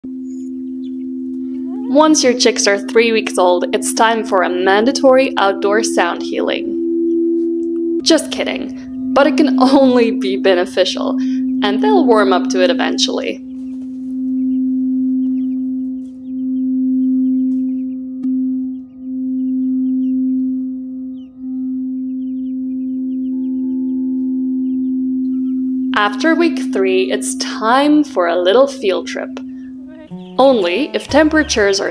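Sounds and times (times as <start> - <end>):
singing bowl ringing: 0.0 - 31.9
chicks peeping: 0.3 - 1.0, 1.6 - 2.3, 13.5 - 14.5, 15.2 - 16.4, 22.3 - 24.0, 29.4 - 31.9.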